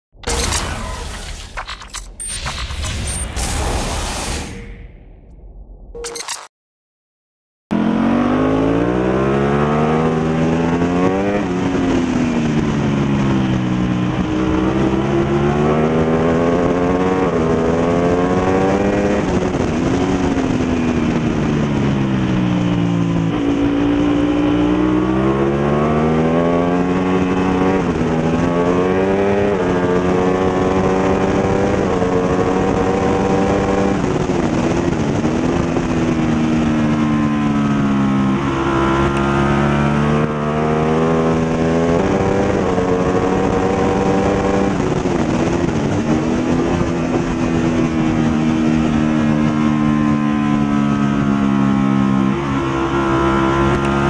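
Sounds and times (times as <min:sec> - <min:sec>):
motorcycle engine revving: 0:07.7 - 0:54.0
wind rush: 0:41.3 - 0:49.6.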